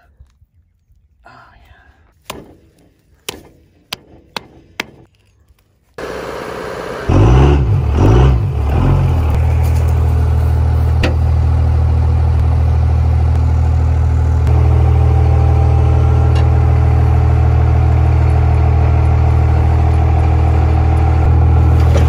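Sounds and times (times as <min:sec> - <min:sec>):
engine running: 0:05.9 - 0:22.0.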